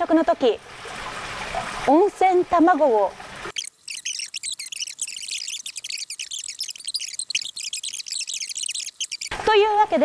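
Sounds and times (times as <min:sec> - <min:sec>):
sped-up woman's voice chattering: 0:03.9 - 0:10.0.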